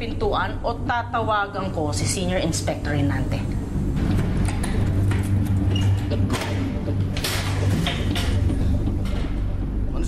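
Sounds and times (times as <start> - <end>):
low tense droning music: 0.0 - 10.0.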